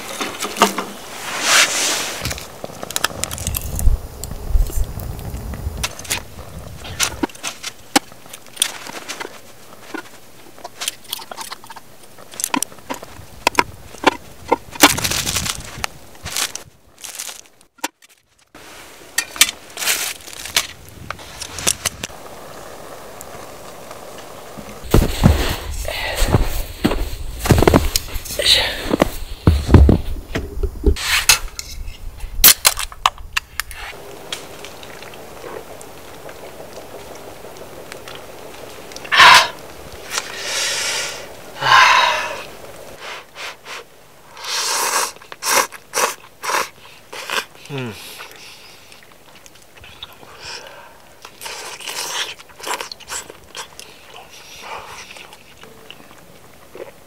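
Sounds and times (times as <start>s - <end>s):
handling and eating sounds: 5.8s - 18.5s, 19.1s - 22.2s.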